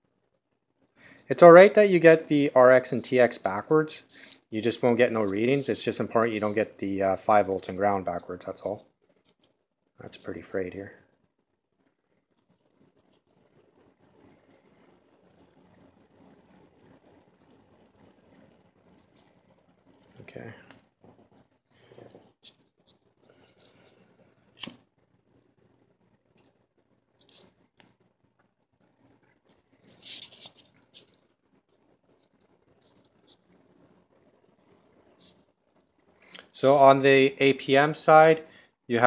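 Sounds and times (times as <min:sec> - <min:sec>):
rustling of wires: 0:03.4 - 0:25.4, 0:26.0 - 0:37.3.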